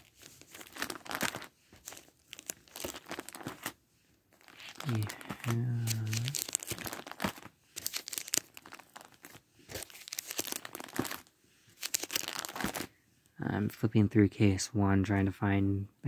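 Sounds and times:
plastic cases crinkling and clicking: 0:00.0 - 0:12.9
person humming: 0:04.9 - 0:06.4.

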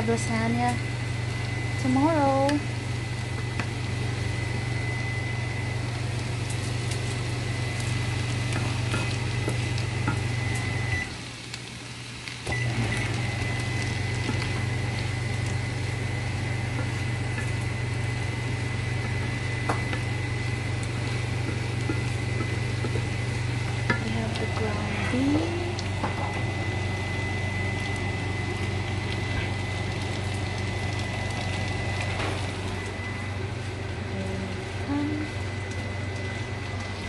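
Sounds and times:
vent fan hum with high whine: 0:00.0 - 0:37.0.

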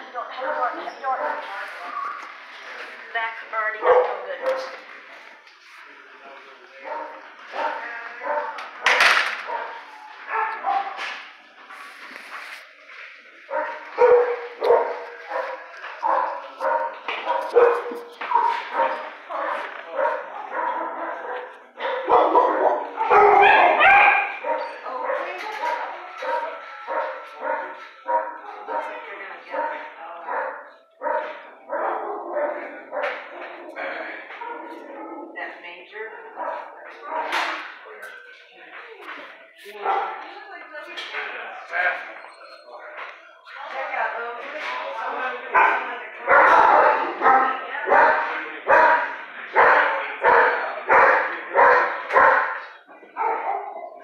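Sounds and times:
dogs barking: 0:00.4 - 0:01.6, 0:03.8 - 0:04.8, 0:06.8 - 0:11.2, 0:13.3 - 0:35.5, 0:36.3 - 0:37.8, 0:39.8 - 0:40.3, 0:45.5 - 0:54.0.

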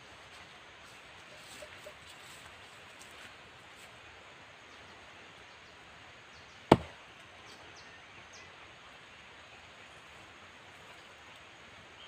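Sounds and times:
faint outdoor background hiss: 0:00.0 - 0:12.0
axe chopping into log: 0:06.7 - 0:07.0.

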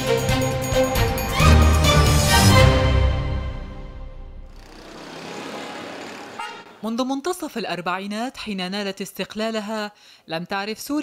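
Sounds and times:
street traffic: 0:04.2 - 0:06.9
short high car horn toot: 0:06.3 - 0:06.8.

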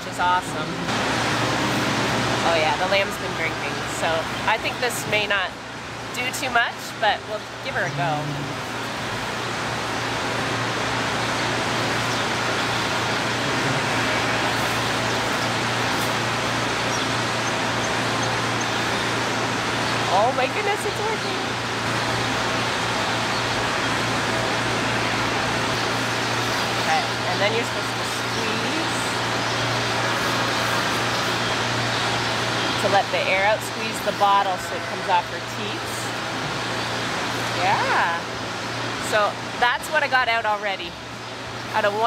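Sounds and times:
low hum: 0:00.0 - 0:31.2.

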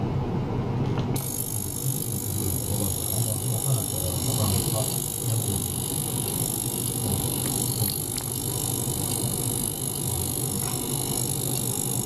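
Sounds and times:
ultrasonic cleaner buzzing: 0:01.1 - 0:12.0.

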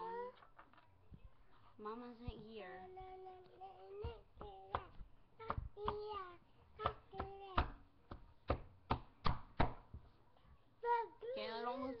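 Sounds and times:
child singing: 0:02.9 - 0:07.8
hands slapping on desk: 0:04.0 - 0:06.2, 0:06.8 - 0:10.1.

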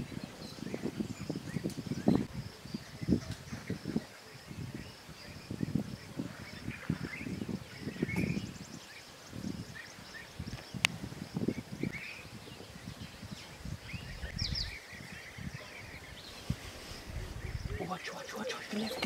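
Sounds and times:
birds chirping: 0:00.0 - 0:19.0
wind buffeting microphone: 0:00.0 - 0:19.0.

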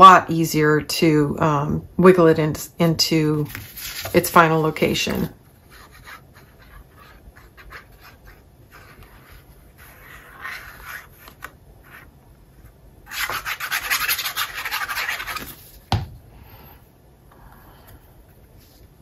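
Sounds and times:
paper rustling: 0:03.5 - 0:04.2.

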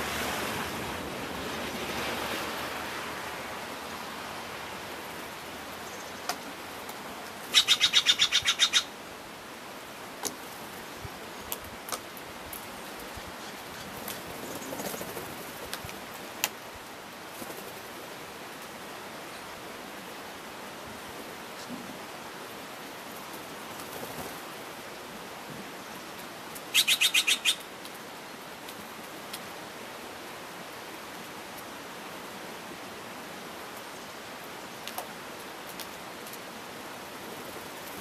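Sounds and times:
steady background hiss: 0:00.0 - 0:38.0.

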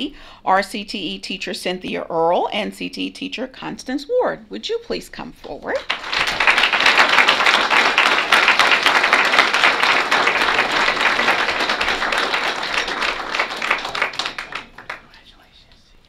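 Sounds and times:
audience applauding: 0:05.8 - 0:15.2.

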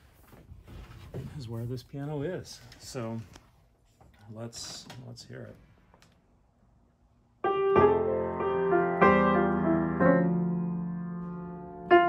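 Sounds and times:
grand piano chords: 0:07.4 - 0:12.0.

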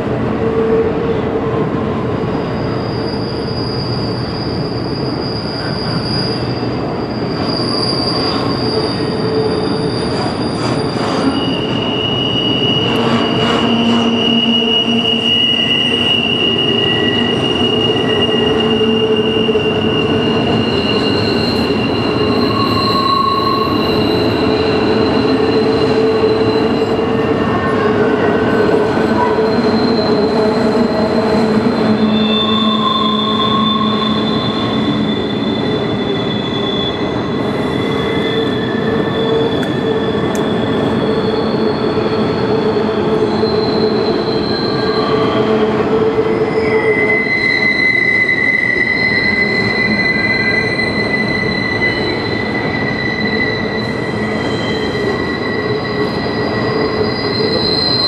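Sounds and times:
train wheels rumbling on rail: 0:00.0 - 0:58.0
high-pitched wheel squeals: 0:00.4 - 0:58.0.

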